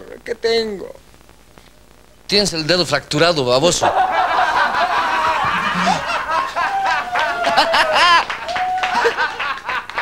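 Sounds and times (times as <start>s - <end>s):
audience laughing: 3.8s - 10.0s.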